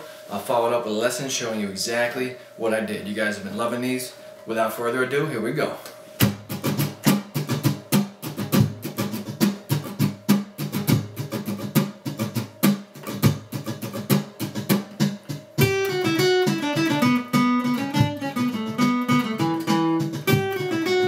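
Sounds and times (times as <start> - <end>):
acoustic guitar strumming: 6.0 - 21.0
picked guitar notes: 6.0 - 21.0.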